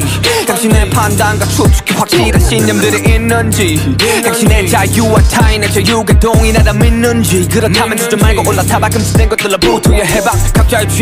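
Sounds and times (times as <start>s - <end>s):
deep bass: 0.0s - 11.0s
man rapping over a beat: 0.0s - 11.0s.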